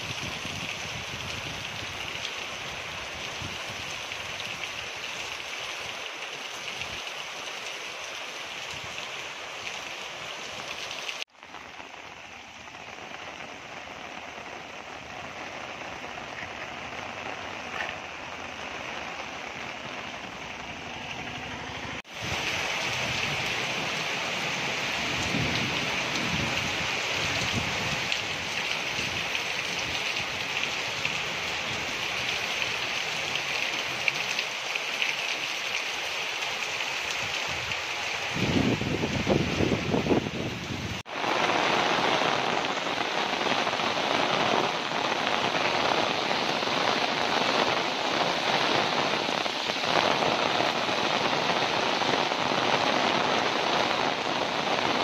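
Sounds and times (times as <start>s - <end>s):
heavy rain falling: 0.0s - 55.0s.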